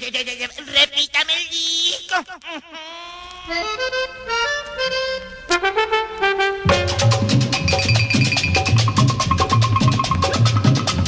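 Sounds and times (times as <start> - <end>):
person laughing: 1.9 - 3.8
accordion playing: 3.5 - 10.8.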